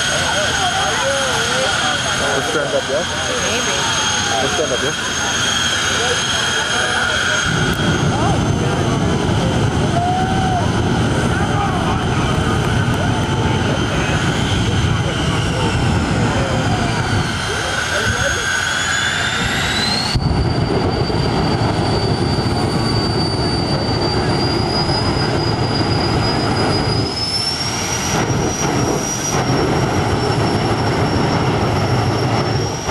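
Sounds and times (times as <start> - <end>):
jet turbine engines whining: 0.0 - 32.9.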